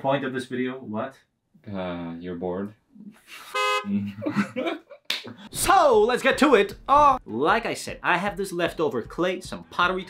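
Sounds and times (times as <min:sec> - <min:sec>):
horn-like toot: 0:03.4 - 0:04.1.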